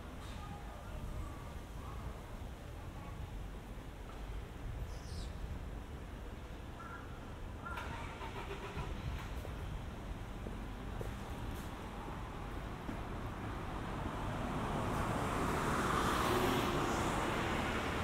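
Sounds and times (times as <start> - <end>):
low rumble of traffic: 0.0 - 18.0.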